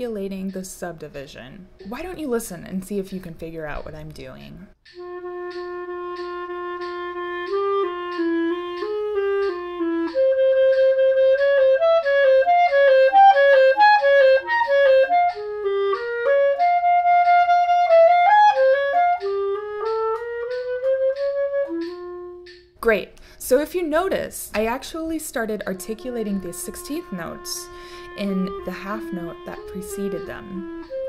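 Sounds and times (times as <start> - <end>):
solo clarinet playing: 5.0 - 22.6, 25.6 - 31.0.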